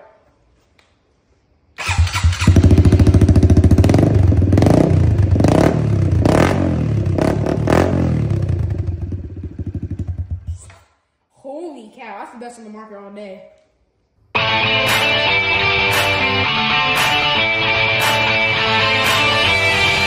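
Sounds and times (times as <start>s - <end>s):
motorcycle engine revving: 1.8s - 10.6s.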